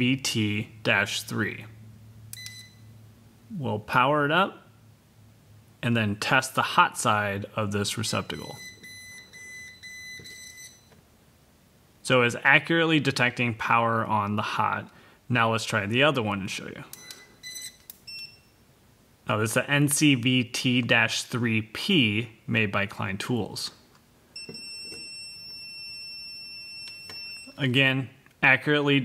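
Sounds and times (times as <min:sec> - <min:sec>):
voltage tester beeping alarm: 0:02.3 - 0:02.9, 0:08.2 - 0:11.0, 0:16.9 - 0:18.6, 0:24.4 - 0:27.6.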